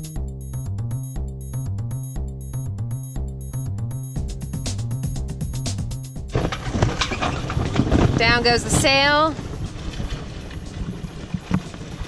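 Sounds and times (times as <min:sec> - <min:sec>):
sail and rigging knocking and flapping: 0:05.2 - 0:12.0
wind on microphone: 0:06.3 - 0:12.0
sea noise: 0:06.4 - 0:12.0.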